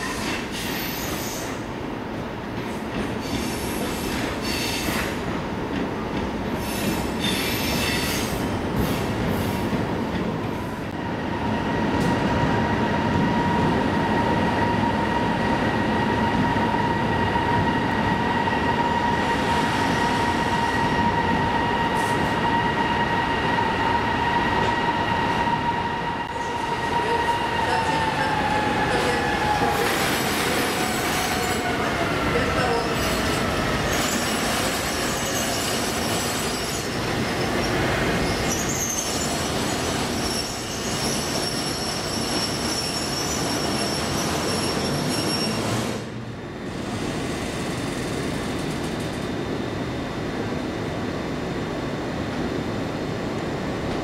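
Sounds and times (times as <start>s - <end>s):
train wheels screeching: 0.0s - 1.6s, 3.1s - 5.2s, 6.6s - 9.6s, 18.2s - 32.0s, 32.6s - 46.1s.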